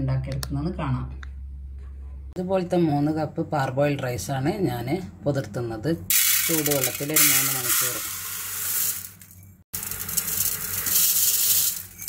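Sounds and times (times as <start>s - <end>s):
rice pouring into metal pot: 6.1s - 9.2s, 9.8s - 12.0s.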